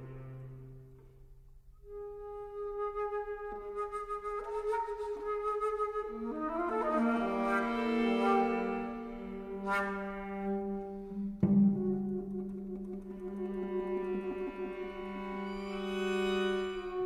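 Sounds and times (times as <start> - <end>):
string trio: 0.0 - 2.1, 2.8 - 17.0
flute: 1.7 - 17.0.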